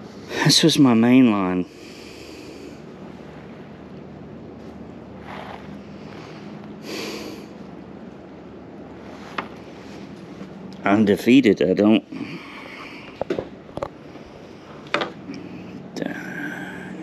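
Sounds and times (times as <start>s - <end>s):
open-air ambience: 0.0s - 17.0s
man breathing out heavily: 1.7s - 3.0s, 5.3s - 7.6s, 12.1s - 13.3s.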